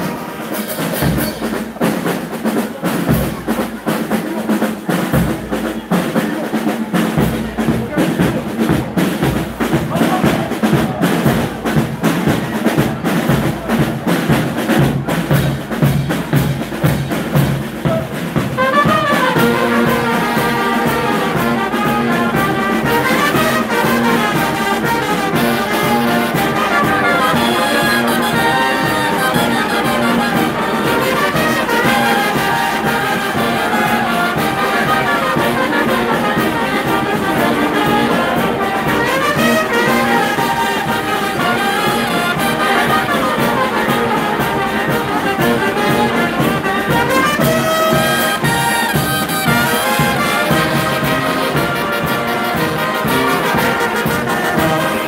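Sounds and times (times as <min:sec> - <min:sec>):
brass band playing: 0:00.0 - 0:55.0.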